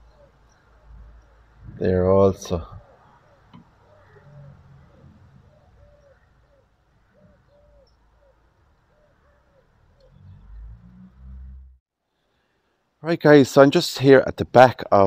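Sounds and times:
faint bird cooing: 0.0s - 10.8s.

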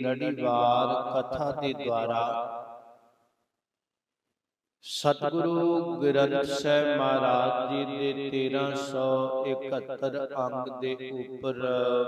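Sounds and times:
man chanting scripture: 0.0s - 2.5s, 4.9s - 12.0s.

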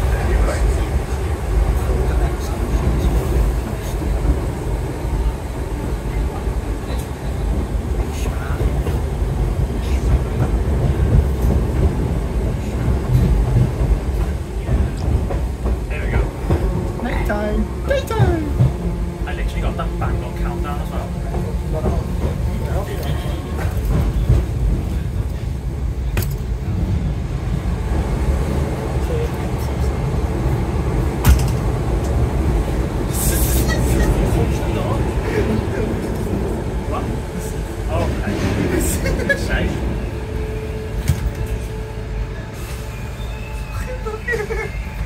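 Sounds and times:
train wheels rumbling on rail: 0.0s - 45.0s.

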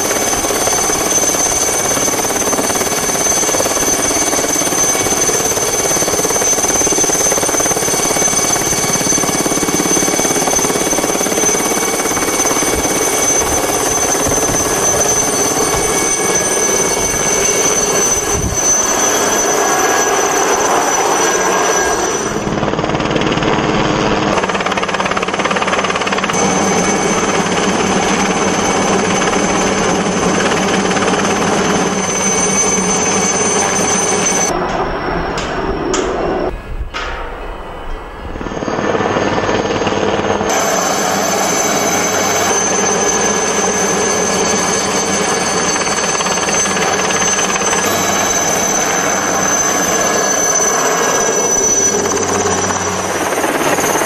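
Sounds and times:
helicopter rotor chop: 0.0s - 54.0s
helicopter turbine whine: 0.0s - 54.0s.

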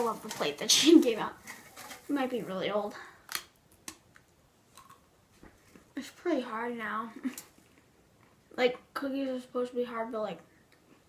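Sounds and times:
faint chewing crunches: 3.3s - 5.1s.

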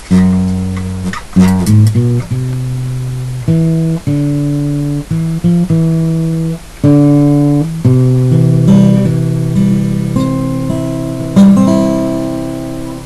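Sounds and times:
solo guitar playing slowly: 0.0s - 13.0s.

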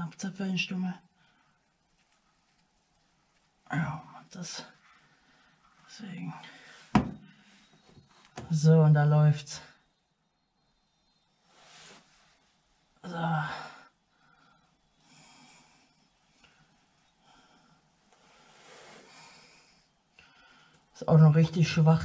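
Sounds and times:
man speaking a word: 3.7s - 4.7s.

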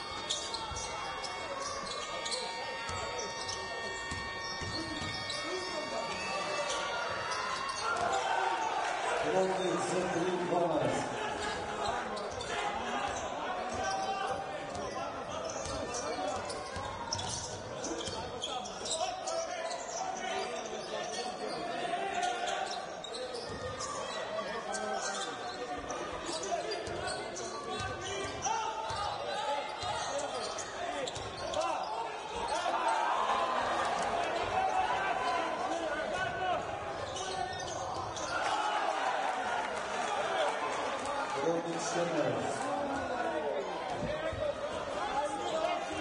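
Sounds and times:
voices of players and spectators: 0.0s - 46.0s.

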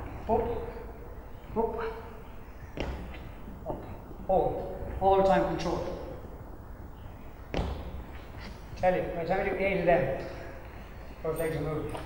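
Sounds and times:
footfall on wooden box: 2.8s - 3.2s, 7.5s - 8.0s.

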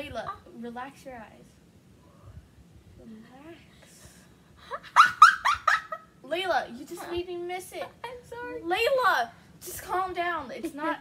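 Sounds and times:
girl squealing laughs: 4.7s - 6.1s.

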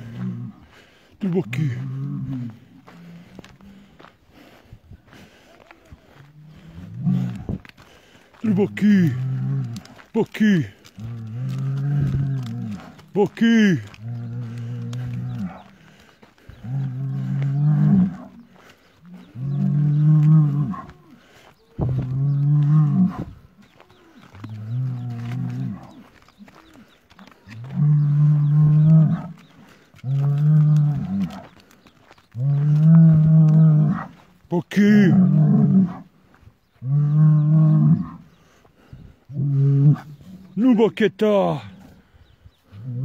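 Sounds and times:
bull mooing: 1.3s - 3.6s, 6.1s - 7.6s, 8.4s - 21.2s, 21.8s - 26.0s, 26.6s - 31.6s, 32.4s - 36.1s, 36.8s - 38.4s, 39.3s - 40.6s.

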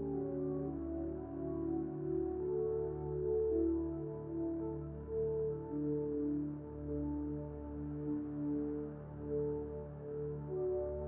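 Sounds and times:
slow ambient music: 0.0s - 11.0s.

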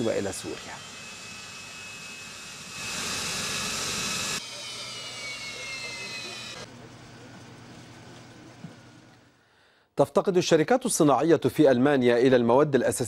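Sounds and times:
jet engine whine: 0.0s - 6.7s.

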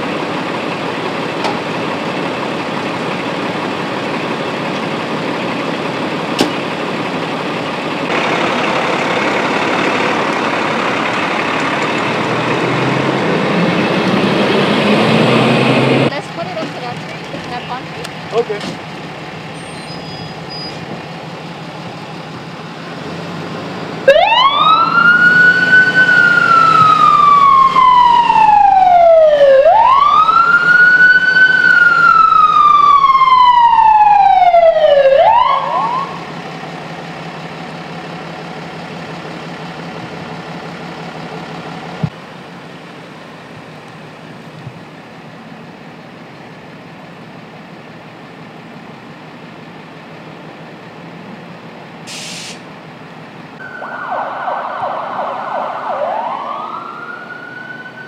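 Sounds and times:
low engine hum: 0.0s - 57.4s
ambulance siren wailing: 24.0s - 37.9s, 53.6s - 58.0s.

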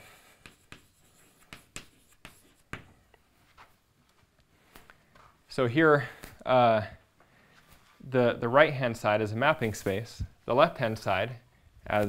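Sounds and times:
chalk tapping and scraping: 0.1s - 3.6s.

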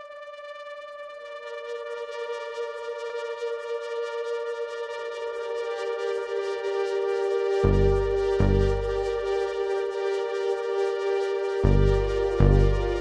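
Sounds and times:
sustained synthesizer chord: 0.0s - 13.0s.

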